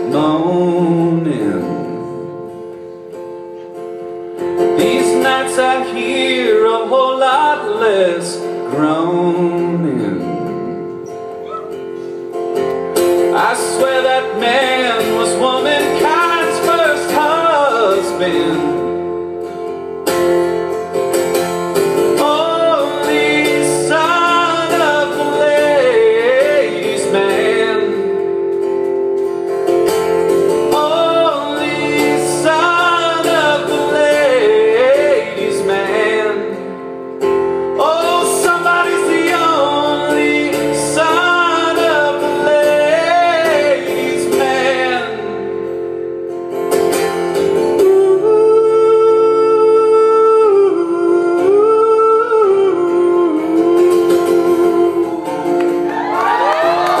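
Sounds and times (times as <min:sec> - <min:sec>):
acoustic guitar chords: 0:00.0 - 0:57.0
man singing long sliding notes: 0:30.7 - 0:36.8.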